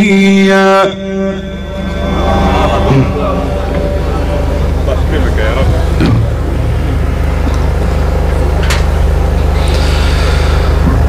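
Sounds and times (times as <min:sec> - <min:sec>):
sound system hum: 0:00.0 - 0:09.7
faint audience voices: 0:01.6 - 0:09.6.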